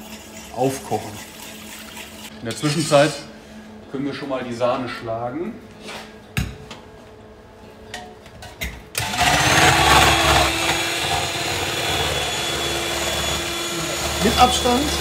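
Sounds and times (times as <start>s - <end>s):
electric hand mixer running: 9.0s - 15.0s.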